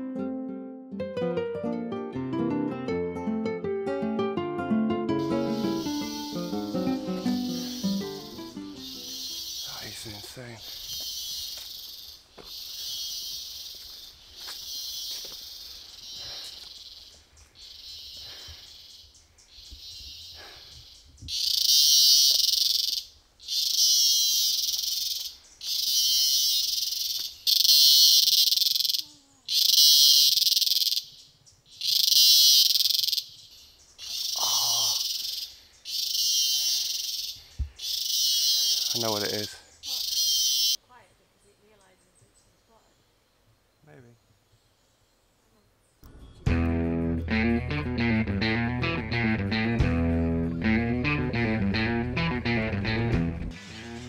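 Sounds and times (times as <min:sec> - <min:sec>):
cicada buzzing: 0:05.2 - 0:40.8.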